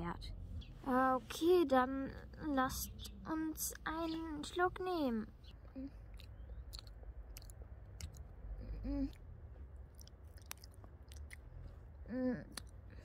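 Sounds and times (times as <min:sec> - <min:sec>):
steady low rumble: 0:00.0 - 0:13.0
person humming: 0:08.6 - 0:09.2, 0:12.1 - 0:12.6.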